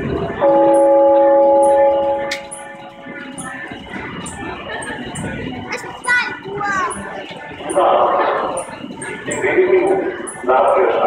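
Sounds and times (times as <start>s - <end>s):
bell-like chime ringing: 0.4s - 3.8s.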